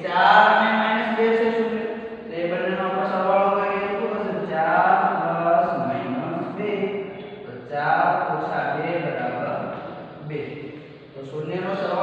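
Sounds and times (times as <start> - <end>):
man speaking in sing-song way: 0.0 - 6.9, 7.5 - 12.0.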